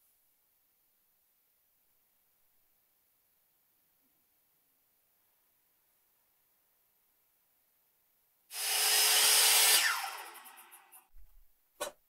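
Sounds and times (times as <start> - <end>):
circular saw running: 8.5 - 11.1.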